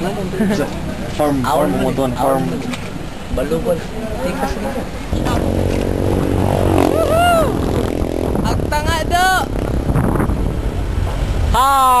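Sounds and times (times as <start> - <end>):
low rumble of wind: 0.0 - 12.0.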